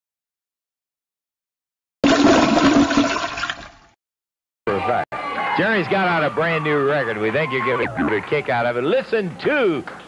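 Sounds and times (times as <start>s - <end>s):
toilet flushing: 2.0s - 3.9s.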